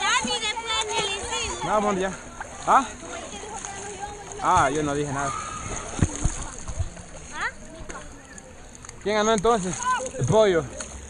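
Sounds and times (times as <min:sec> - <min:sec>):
pool water splashing: 0:00.0 - 0:11.0.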